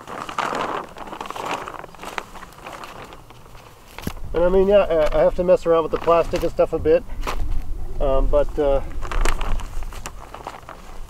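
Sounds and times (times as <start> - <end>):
plastic sheeting rustling and crinkling: 0.0 - 11.0.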